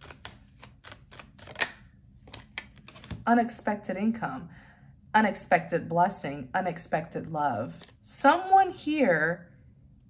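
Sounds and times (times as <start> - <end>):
cards shuffling clicks: 0.0 - 3.2.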